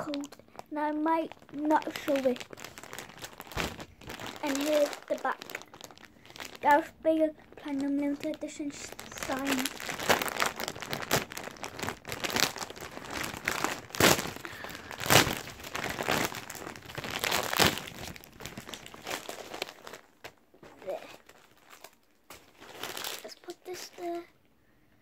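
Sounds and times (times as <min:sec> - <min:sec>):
plastic wrapping crinkling: 0:00.0 - 0:24.3.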